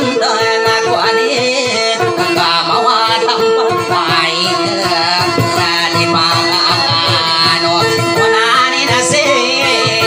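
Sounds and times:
amplified guitar melody: 0.0s - 10.0s
person singing: 0.0s - 10.0s.

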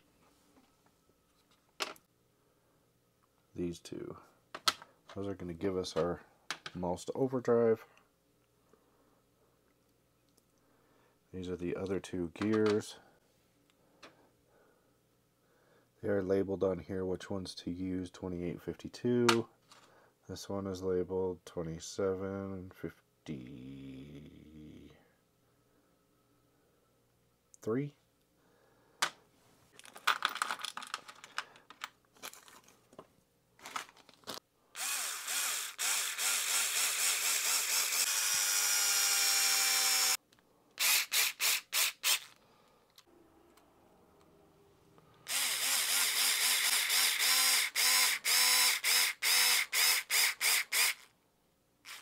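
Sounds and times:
clicks of small parts handled: 29.8s - 34.4s
electric screwdriver whirring: 34.8s - 40.2s, 40.8s - 42.4s, 45.3s - 51.1s.

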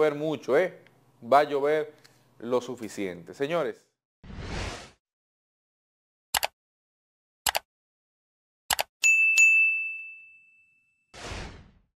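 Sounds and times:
short whoosh: 4.2s - 5.0s
notification bell ding: 9.0s - 11.1s.

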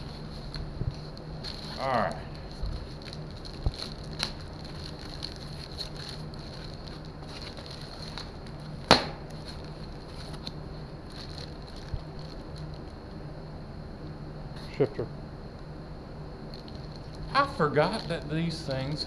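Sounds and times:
packing material crinkling: 0.0s - 12.9s, 16.5s - 19.0s
steady low hum: 0.0s - 19.0s
sharp snap: 8.9s - 9.3s.

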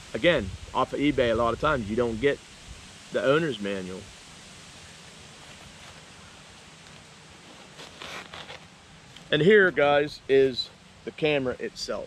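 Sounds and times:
faint outdoor background hiss: 0.0s - 12.0s
rustling in fabric bag: 5.4s - 8.7s.

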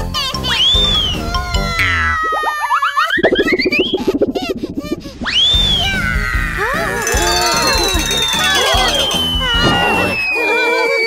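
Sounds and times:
cartoon soundtrack music: 0.4s - 4.9s
fast wobbling warble: 1.8s - 2.6s, 3.2s - 5.4s.

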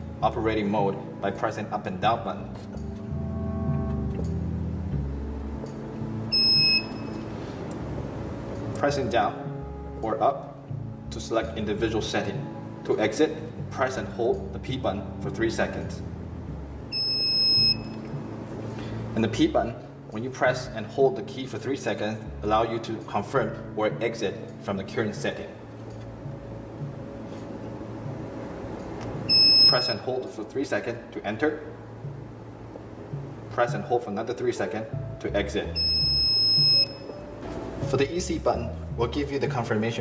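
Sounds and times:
background music with bass: 0.0s - 40.0s
high-pitched buzzer beep: 6.3s - 7.3s, 16.9s - 18.1s, 29.3s - 30.0s, 35.8s - 37.2s.

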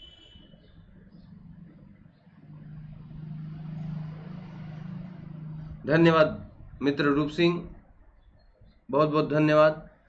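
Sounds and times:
road vehicle passing: 0.7s - 8.3s.

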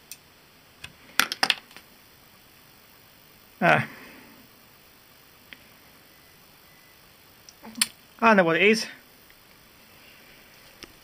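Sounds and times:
crackling electrical noise: 0.0s - 11.0s
low hiss: 0.0s - 11.0s.

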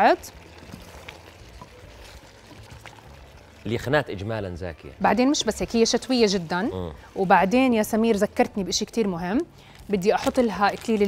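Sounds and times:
low sizzle: 0.0s - 11.0s.

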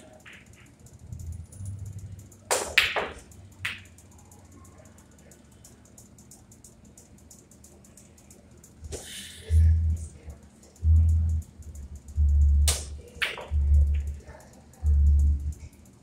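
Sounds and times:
pool balls clacking: 2.5s - 3.8s, 13.2s - 13.6s
cue striking ball: 2.6s - 3.8s.

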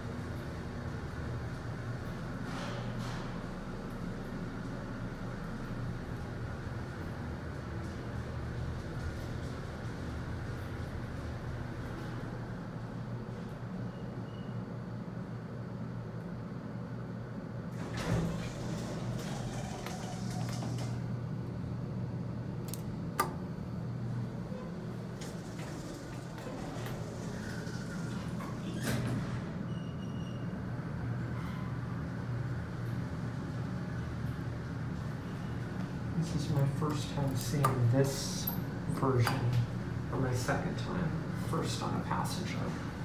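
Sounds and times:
low hum in elevator car: 0.0s - 40.2s
elevator doors sliding open: 17.7s - 21.2s, 24.3s - 40.1s.

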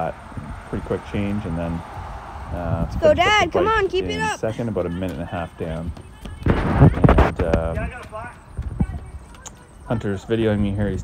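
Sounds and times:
voice: 0.0s - 1.8s, 2.6s - 11.0s.

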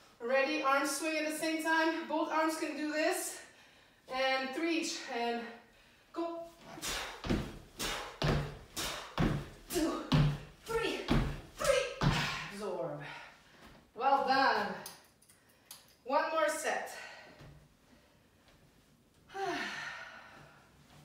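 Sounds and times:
landing thuds on tile floor: 7.2s - 12.4s
woman breathing hard and gasping: 19.3s - 20.7s.

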